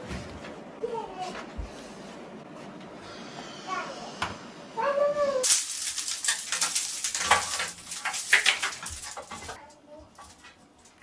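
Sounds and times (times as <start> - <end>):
clothes and hangers clattering: 5.4 - 11.0.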